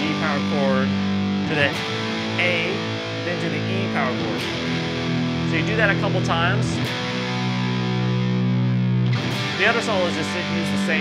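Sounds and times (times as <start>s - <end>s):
electric guitar power chord ringing: 0.0s - 11.0s.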